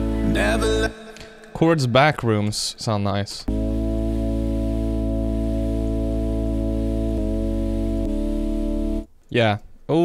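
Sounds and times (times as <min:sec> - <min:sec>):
held synthesizer chords: 0:00.0 - 0:01.6, 0:03.5 - 0:09.1
deep bass note: 0:03.5 - 0:09.1.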